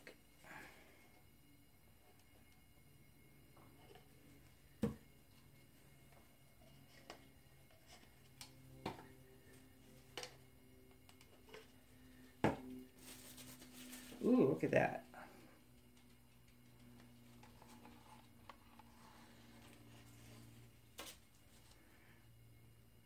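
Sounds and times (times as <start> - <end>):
faint low hum: 0.0 - 23.0.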